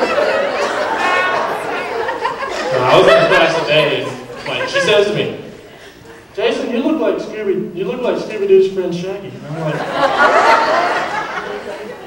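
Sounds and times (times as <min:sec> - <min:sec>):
man talking into a microphone: 0:02.7 - 0:05.6, 0:06.3 - 0:09.9.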